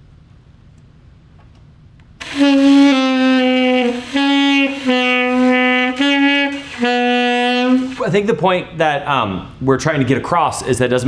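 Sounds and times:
saxophone playing held notes: 2.2s - 8.0s.

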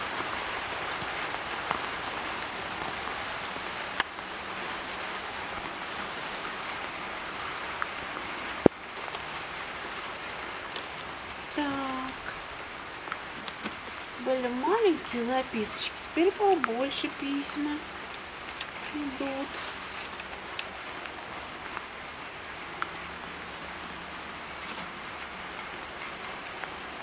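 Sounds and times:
light rain falling: 0.0s - 27.0s.

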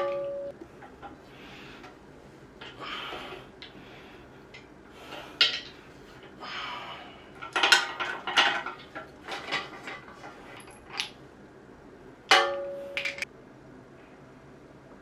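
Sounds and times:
loud ringing metal clang: 12.3s - 13.2s.

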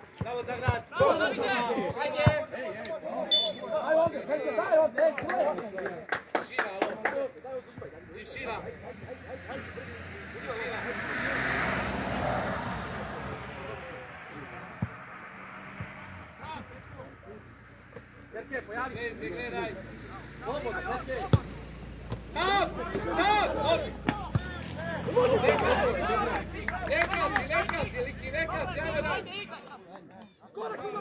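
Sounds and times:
vehicle passing: 7.8s - 29.5s
people shouting: 22.3s - 26.4s.

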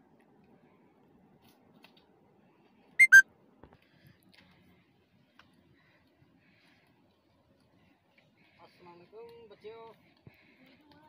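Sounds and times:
short whistle-like notes: 3.0s - 3.2s.

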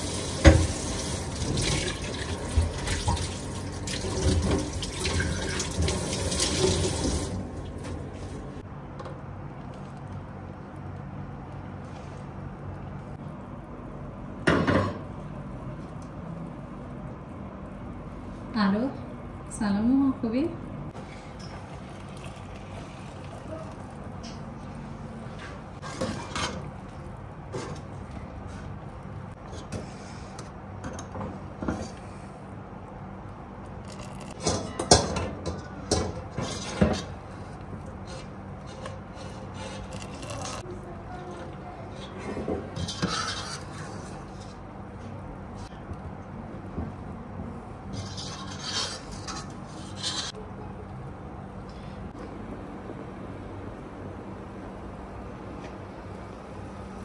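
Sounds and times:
steady low hum: 7.1s - 57.0s.

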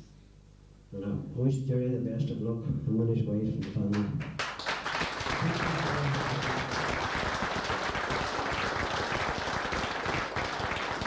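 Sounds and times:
audience applause: 3.9s - 11.0s.

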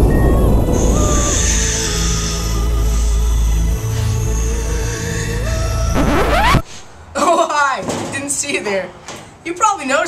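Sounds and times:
electronic music with rising sweep: 5.9s - 6.7s.

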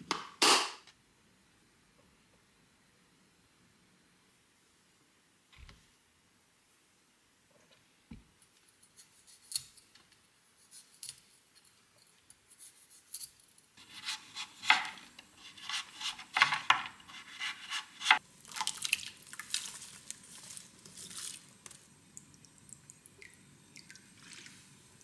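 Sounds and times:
knife slicing broccoli stem: 13.8s - 18.2s
vegetable being handled: 19.4s - 21.6s.

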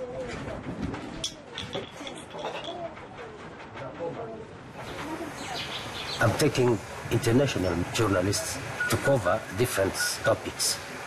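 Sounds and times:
birds calling: 4.8s - 7.0s.

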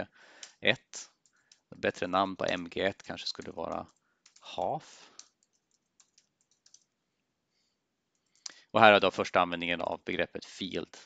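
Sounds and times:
computer keyboard keystrokes: 2.4s - 6.9s.

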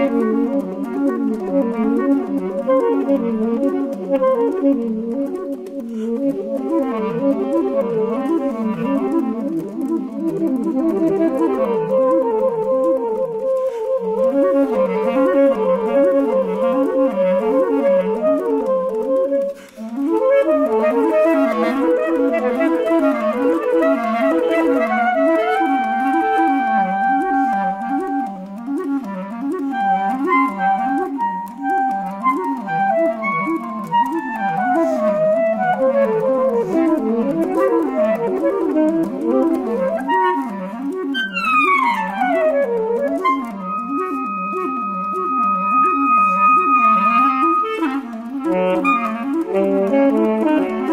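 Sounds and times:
saxophone and clarinet duo: 0.0s - 50.9s.

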